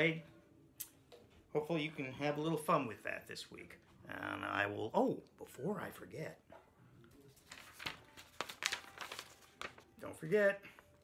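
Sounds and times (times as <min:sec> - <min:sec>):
paper rustling and crinkling: 0:07.1 - 0:11.0.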